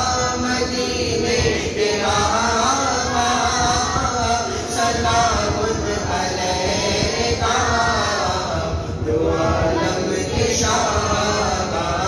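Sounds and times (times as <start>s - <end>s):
men chanting through a microphone: 0.0s - 12.0s.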